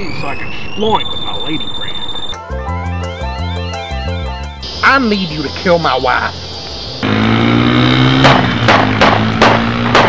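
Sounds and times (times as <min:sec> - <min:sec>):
background music low chord: 0:00.0 - 0:10.0.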